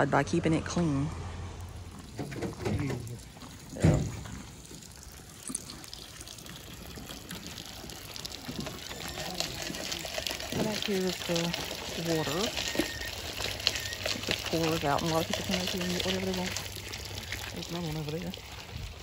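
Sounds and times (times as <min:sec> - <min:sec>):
water pouring and splashing: 0:01.6 - 0:19.0.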